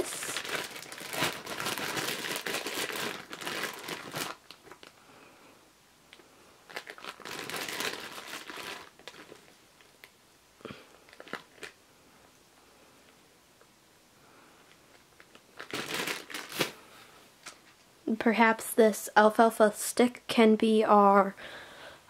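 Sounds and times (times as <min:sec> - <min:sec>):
plastic bag crinkling: 0:00.0 - 0:05.0, 0:06.7 - 0:10.1, 0:10.9 - 0:11.8, 0:14.9 - 0:16.8.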